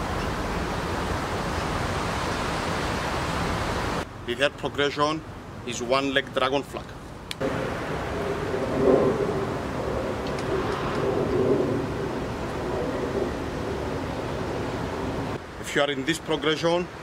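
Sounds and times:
steady rushing outdoor noise: 0:00.0 - 0:17.0.

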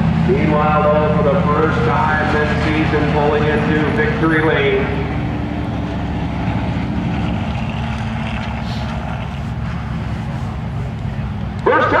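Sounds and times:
car engines running slowly: 0:00.0 - 0:12.0.

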